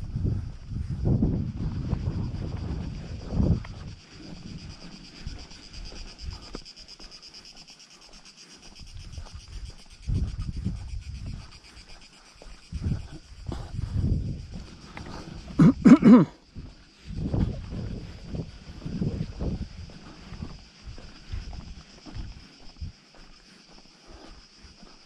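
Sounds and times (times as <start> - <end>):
wind rumbling on microphone: 0.0 - 7.6, 8.6 - 25.0
cicadas buzzing: 0.0 - 25.0.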